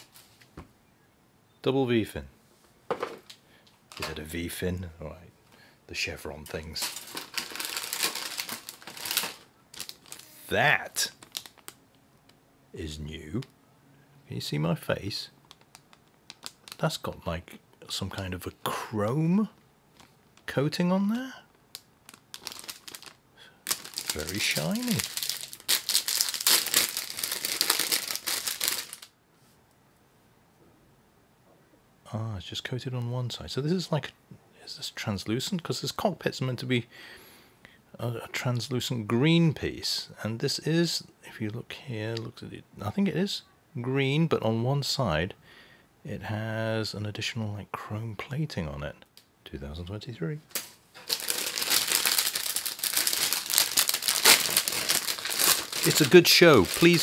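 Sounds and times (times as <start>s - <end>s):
plastic bags crinkling: 0.0s - 0.2s, 3.0s - 4.2s, 6.4s - 11.8s, 15.4s - 17.1s, 21.7s - 29.1s, 50.5s - 57.0s.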